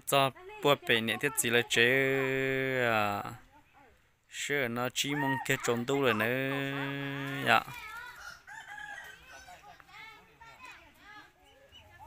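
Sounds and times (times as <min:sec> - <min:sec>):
chickens clucking: 0:05.1 - 0:09.9
rooster crowing: 0:08.1 - 0:09.6.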